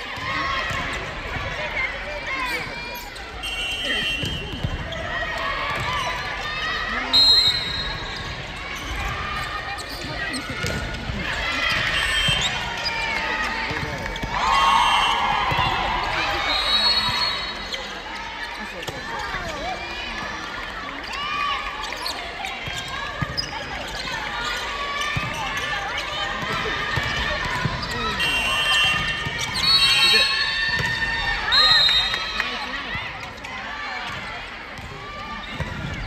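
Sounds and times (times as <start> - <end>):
players calling and shouting: 0.0 - 36.0
shrill referee whistle: 3.4 - 4.8, 7.1 - 8.2, 11.9 - 12.6, 16.2 - 17.8, 27.8 - 30.7, 31.4 - 32.4
shoes squeaking on wooden court: 7.6 - 13.3, 21.8 - 26.2, 26.9 - 30.9.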